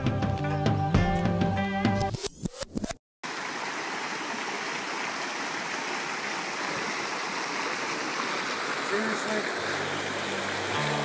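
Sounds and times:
river water rushing: 0:03.3 - 0:11.0.

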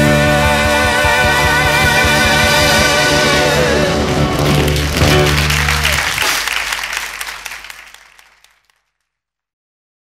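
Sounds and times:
audience applause: 0:03.6 - 0:09.2.

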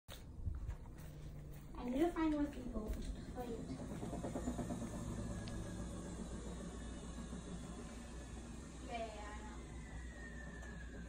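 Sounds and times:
washing machine humming: 0:00.1 - 0:11.0.

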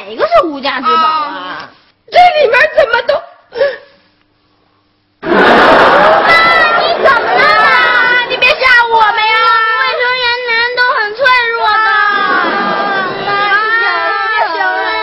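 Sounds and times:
children wailing and crying: 0:05.9 - 0:15.0.

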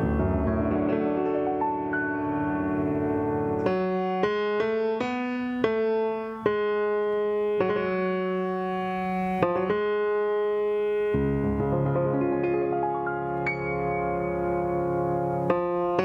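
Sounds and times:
grand piano chords: 0:00.0 - 0:16.0.

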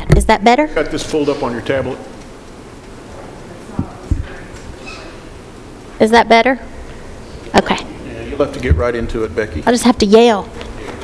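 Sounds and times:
microphone handling thumps: 0:00.0 - 0:00.4, 0:03.7 - 0:04.8.

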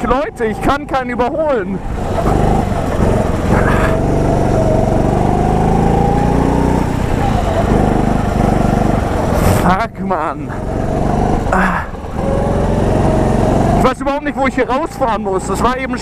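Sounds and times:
go-kart engine revving: 0:00.0 - 0:16.0.

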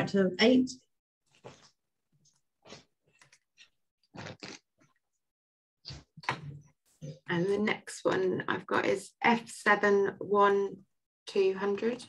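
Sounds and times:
person chewing: 0:01.3 - 0:05.0.

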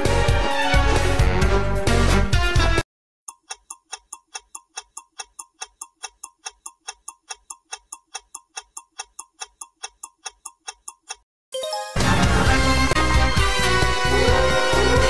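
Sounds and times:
clock ticking: 0:03.3 - 0:11.2.

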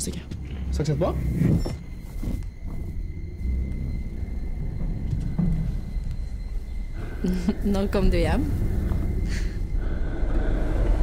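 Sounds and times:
low rumbling drone: 0:00.0 - 0:11.0
woman speaking: 0:07.3 - 0:08.5.

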